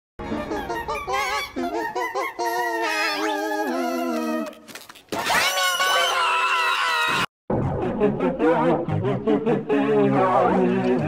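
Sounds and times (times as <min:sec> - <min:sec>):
distorted pitch-shifted cartoon voice: 0:00.2 - 0:04.5, 0:07.6 - 0:11.0.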